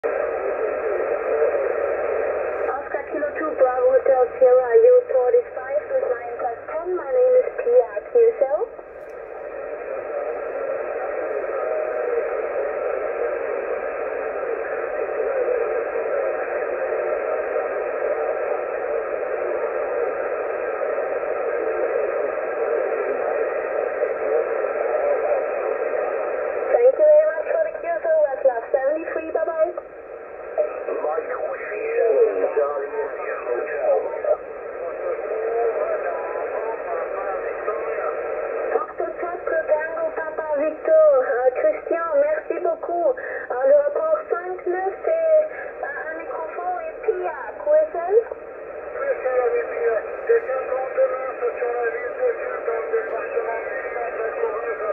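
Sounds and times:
shortwave radio noise: 0.0 - 54.9
voice over radio: 30.4 - 54.9.

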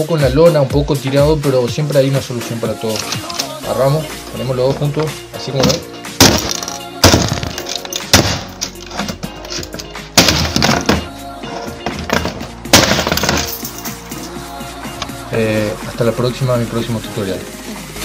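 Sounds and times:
music: 0.0 - 18.0
plastic keyboard being smashed: 5.6 - 11.1, 11.8 - 13.5.

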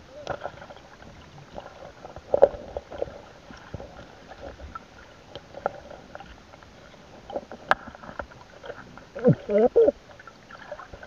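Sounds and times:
faint scraping underwater: 0.0 - 11.0
muffled underwater movement: 0.0 - 11.0.

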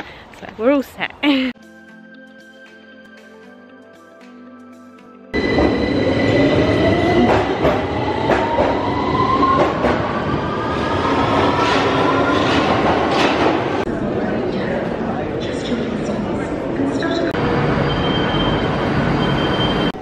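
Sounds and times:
train wheel clatter and rumble: 7.2 - 8.8, 9.5 - 10.2, 11.6 - 13.9.

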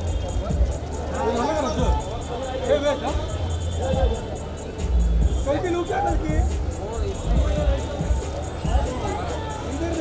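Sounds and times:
music with heavy bass: 0.0 - 10.0
people talking: 0.0 - 10.0.

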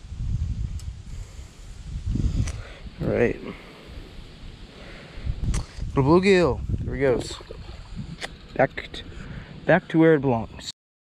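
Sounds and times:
wind on microphone: 0.0 - 10.7.

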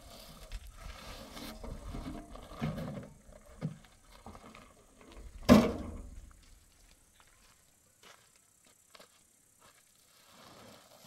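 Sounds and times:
wheelbarrow metal clunk: 1.5 - 6.2.

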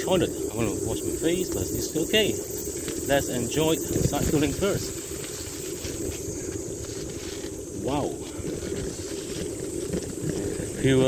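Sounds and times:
bicycle tyre noise: 0.0 - 11.0
high-pitched insect buzz: 0.0 - 11.0
wind rumbling on microphone: 0.0 - 11.0.

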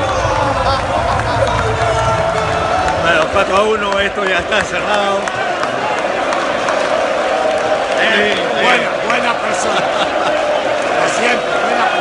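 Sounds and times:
stadium crowd chanting and shouting: 0.0 - 12.0.

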